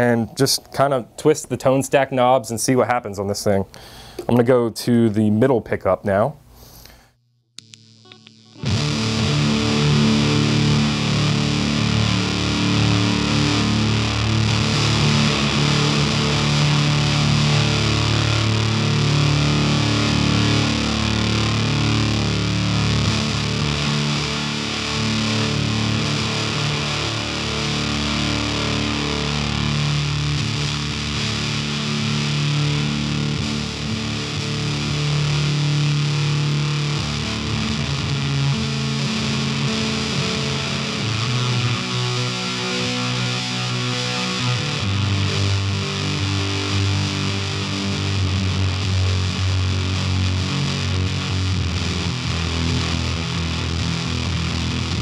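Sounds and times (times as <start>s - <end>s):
fuzzed electric guitar: 6.6s - 55.0s.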